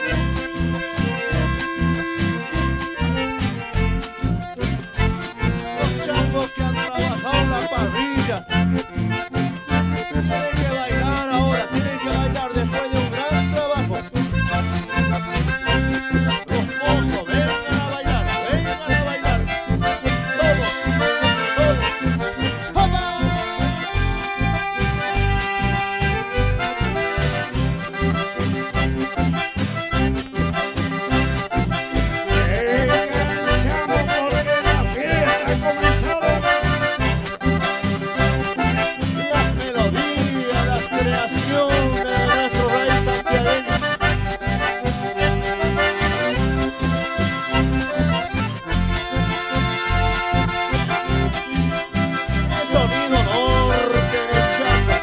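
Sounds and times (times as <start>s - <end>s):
bass line: 0.0s - 55.0s
button accordions playing folk tune: 0.0s - 55.0s
strummed acoustic guitars: 0.0s - 55.0s.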